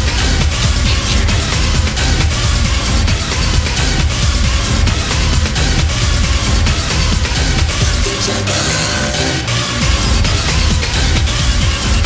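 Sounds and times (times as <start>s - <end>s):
electronic dance music: 0.0s - 12.0s.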